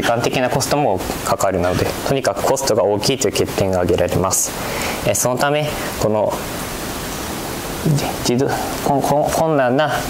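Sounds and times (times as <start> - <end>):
man speaking: 0.0 - 6.5, 7.8 - 10.0
steady background hiss: 0.0 - 10.0.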